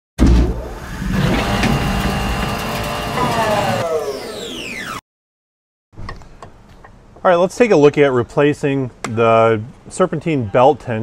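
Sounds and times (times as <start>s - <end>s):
car engine revving: 0.8s - 4.0s.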